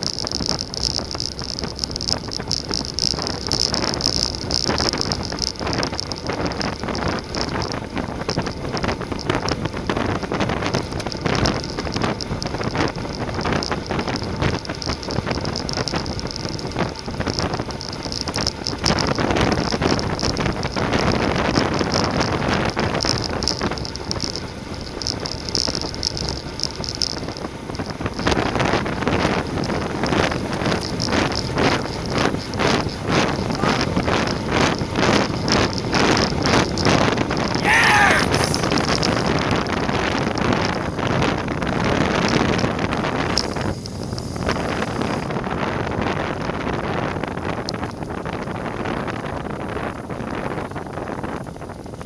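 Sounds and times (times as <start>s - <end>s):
tyre and road noise: 0.0s - 52.0s
wind rushing over microphone: 0.0s - 52.0s.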